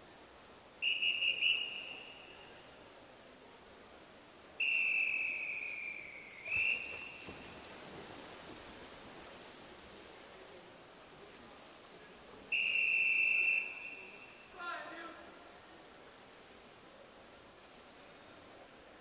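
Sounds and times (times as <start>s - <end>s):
referee's whistle blasts: 0.8s - 2.4s, 4.6s - 7.2s, 12.5s - 14.5s.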